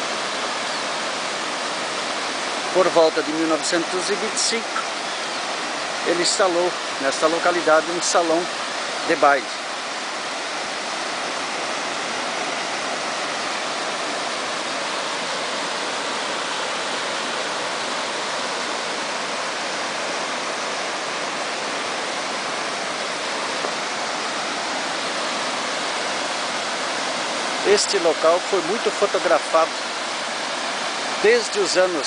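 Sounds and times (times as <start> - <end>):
stream water rushing over rocks: 0.0 - 32.0.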